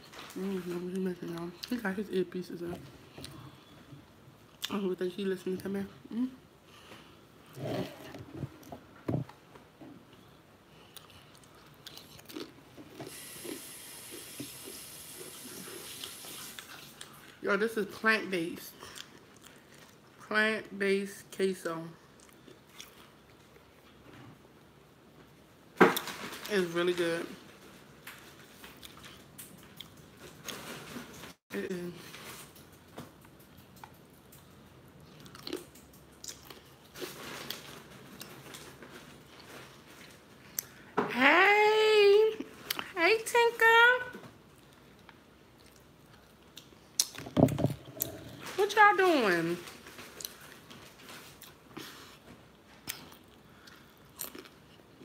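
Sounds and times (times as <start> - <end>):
person chewing crunchy food: 10.8 - 17.3, 22.2 - 23.6, 35.0 - 38.6, 44.6 - 48.6, 52.8 - 55.0.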